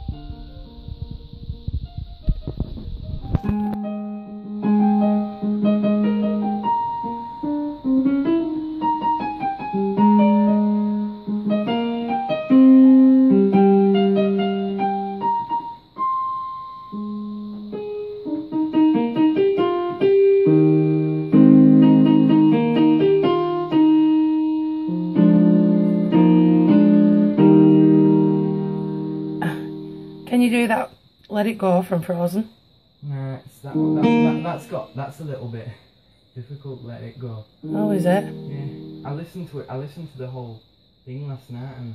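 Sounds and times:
electronic keyboard piano melody: 0:00.0 - 0:30.2, 0:33.8 - 0:34.8, 0:37.6 - 0:39.3.

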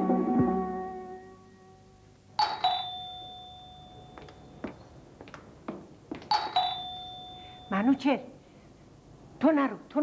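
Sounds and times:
ding-dong doorbell chime: 0:02.4 - 0:04.6, 0:06.3 - 0:08.1.

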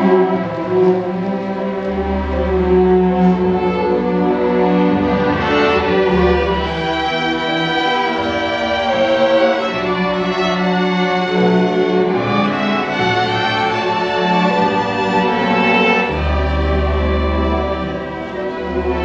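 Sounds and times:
string orchestra playing: 0:00.0 - 0:19.0.

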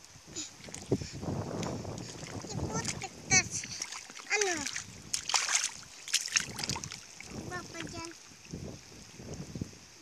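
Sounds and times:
mud and water sloshing: 0:00.3 - 0:09.2.

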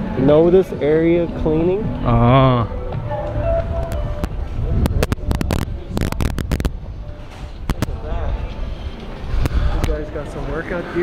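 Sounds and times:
wind noise on microphone: 0:01.2 - 0:10.5
handling crackles and clicks: 0:03.8 - 0:06.8.

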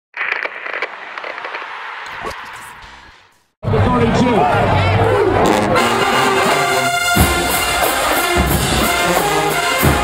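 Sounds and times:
crackling hissing noise effect: 0:00.1 - 0:03.3.

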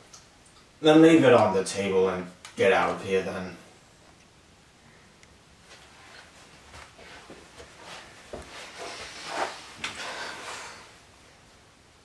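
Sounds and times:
rustling: 0:04.9 - 0:11.0
person moving about: 0:05.5 - 0:11.1.

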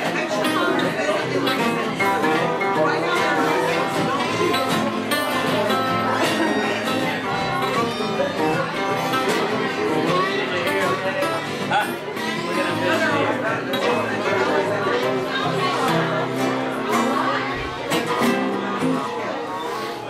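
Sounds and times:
acoustic guitars and strings playing: 0:00.0 - 0:20.0.

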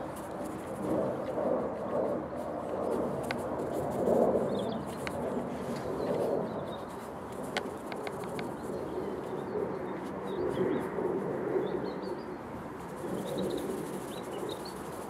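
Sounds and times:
birds chirping: 0:04.4 - 0:10.9, 0:11.5 - 0:15.0.

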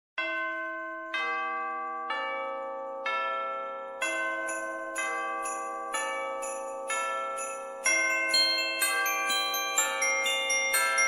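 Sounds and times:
ringing bell tones: 0:04.1 - 0:11.0.

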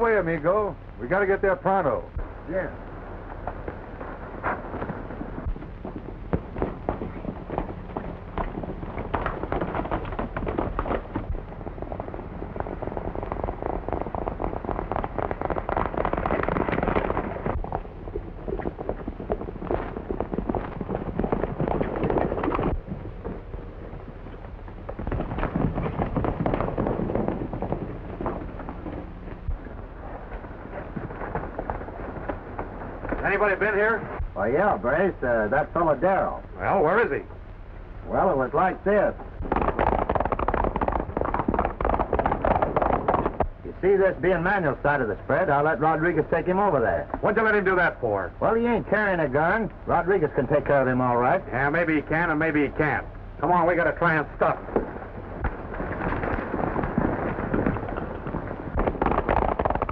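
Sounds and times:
hoofbeats of galloping horses: 0:01.1 - 0:37.2, 0:38.4 - 0:59.9.

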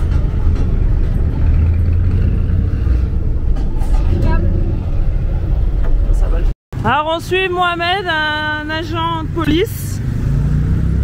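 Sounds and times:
diesel truck engine drone: 0:00.0 - 0:11.0.

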